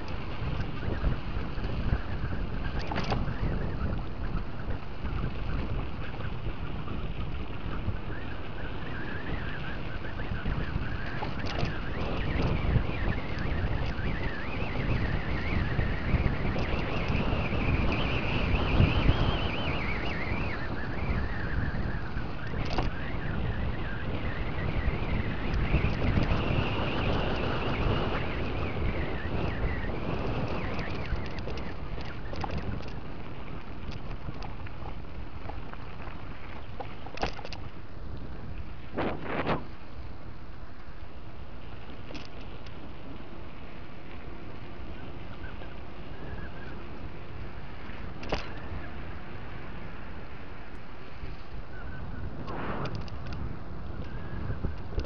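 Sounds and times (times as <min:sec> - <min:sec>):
bike rolling on ribbed concrete: 0:00.0 - 0:55.0
wind buffeting microphone: 0:00.0 - 0:55.0
wavering high-pitched squeal: 0:07.6 - 0:33.0.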